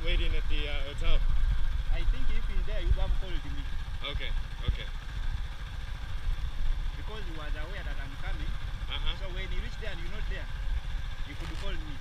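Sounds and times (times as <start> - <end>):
motorcycle engine rumble: 0.0 - 12.0.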